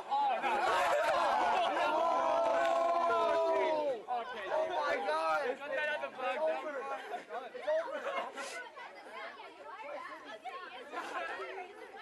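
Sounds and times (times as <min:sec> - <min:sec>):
teenagers chattering: 0:00.0 - 0:12.0.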